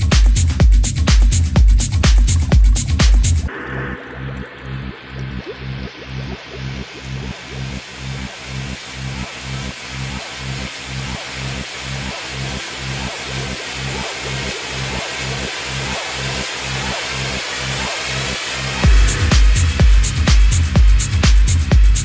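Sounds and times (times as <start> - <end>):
electronic dance beat: 0.0 - 22.0
pulsing bass note: 0.0 - 22.0
rising white-noise sweep: 1.8 - 22.0.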